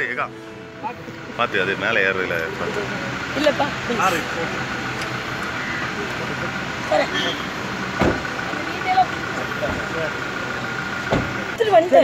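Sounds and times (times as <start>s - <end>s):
car idling: 0.0s - 12.0s
voices: 0.0s - 12.0s
car door thump: 7.9s - 8.3s, 11.1s - 11.4s.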